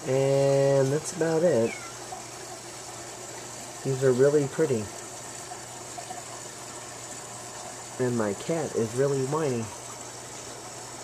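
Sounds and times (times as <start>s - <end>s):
aquarium water bubbling: 0.0s - 11.0s.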